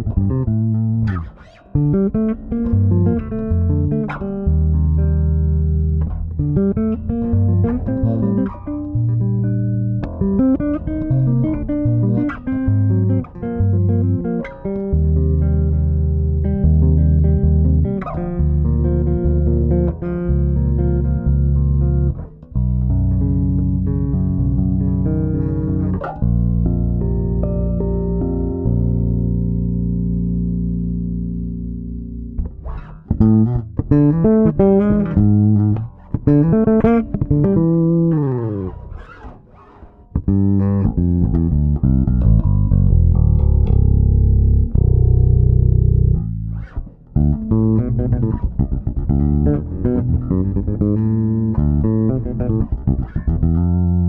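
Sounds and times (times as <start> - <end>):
electric bass played fingerstyle: 0.0 - 54.0.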